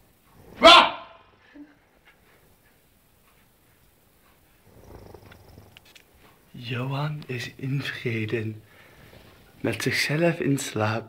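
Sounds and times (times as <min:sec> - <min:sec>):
man snoring softly: 0:04.6 - 0:05.8.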